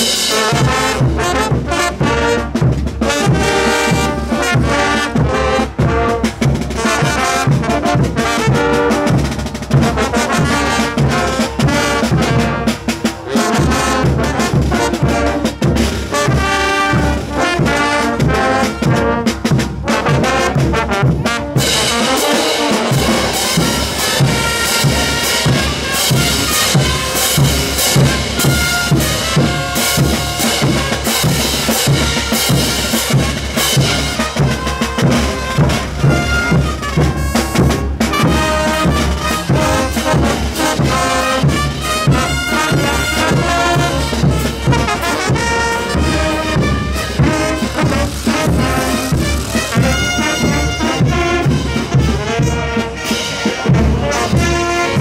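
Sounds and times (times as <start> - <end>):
steady drum beat: 0.0 - 55.0
trumpets and trombones: 0.0 - 55.0.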